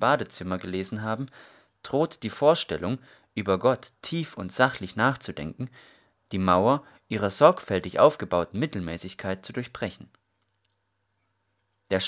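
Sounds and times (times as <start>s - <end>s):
narrator reading: 0.0s - 10.2s.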